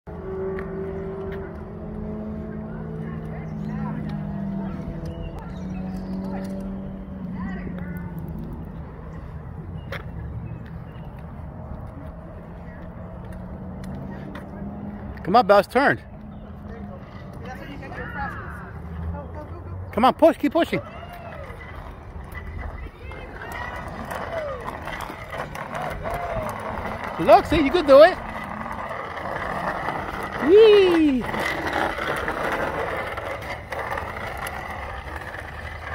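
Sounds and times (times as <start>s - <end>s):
low engine hum: 0.1s - 15.3s
bicycle training wheels rolling: 0.2s - 35.9s.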